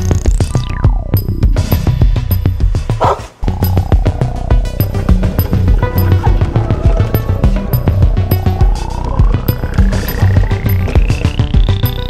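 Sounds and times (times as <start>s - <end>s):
electronic music with drum beat: 0.0s - 12.0s
rising synth sweep: 3.4s - 12.0s.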